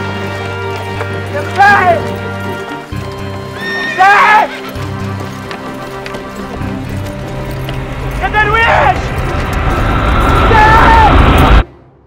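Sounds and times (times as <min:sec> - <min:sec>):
horse whinnying: 0:03.5 - 0:05.0.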